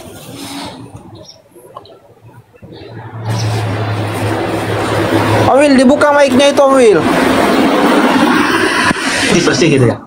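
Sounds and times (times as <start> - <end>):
rushing noise: 2.6 - 10.0.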